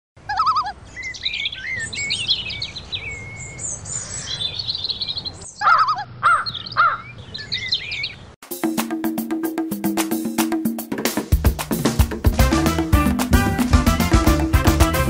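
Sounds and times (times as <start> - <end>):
birds singing and calling: 0.2 - 8.4.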